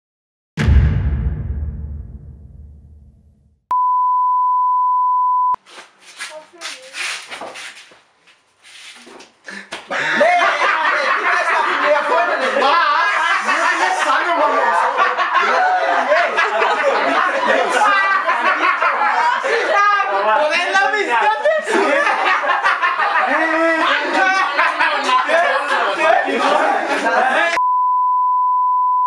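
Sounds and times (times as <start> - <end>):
sine wave test tone: 3.7 - 5.6, 27.6 - 29.0
people talking at once: 10.0 - 27.6.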